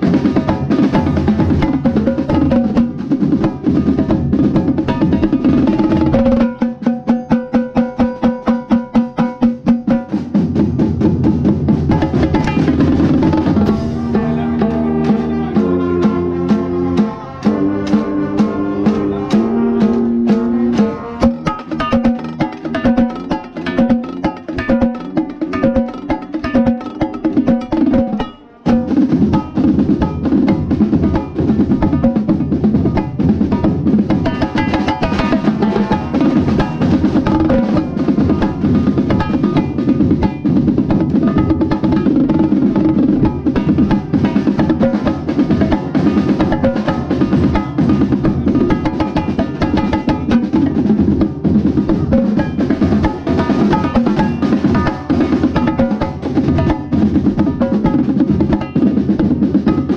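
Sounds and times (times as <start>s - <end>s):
drumline drumming: 0.0s - 59.9s
tenor drums played fast: 0.0s - 59.9s.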